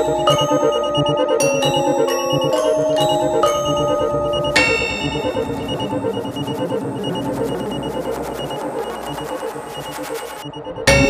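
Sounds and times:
bright synthesizer note: 0.0 - 9.8
fast-pulsing electronic texture: 0.0 - 11.0
high repeating beep: 0.0 - 11.0.

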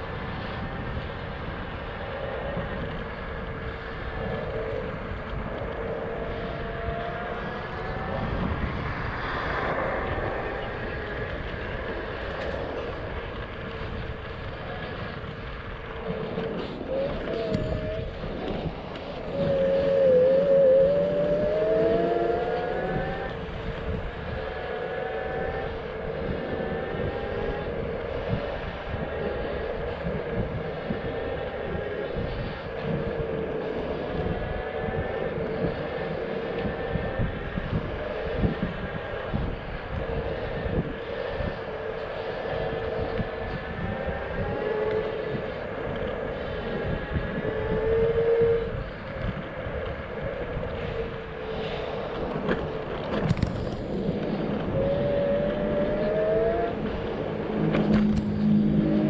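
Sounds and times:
electric scooter motor whining: 0.0 - 59.0
wind noise: 0.0 - 59.0.

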